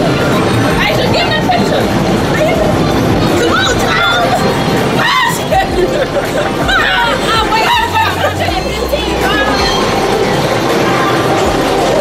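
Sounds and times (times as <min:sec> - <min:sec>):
din of a crowded room: 0:00.0 - 0:12.0.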